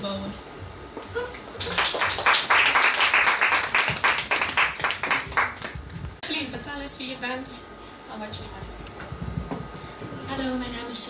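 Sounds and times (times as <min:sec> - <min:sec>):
audience applause: 0:01.3 - 0:06.0.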